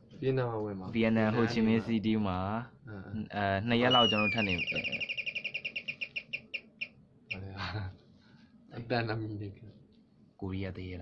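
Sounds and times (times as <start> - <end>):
high-pitched chirping trill: 3.8 - 7.4.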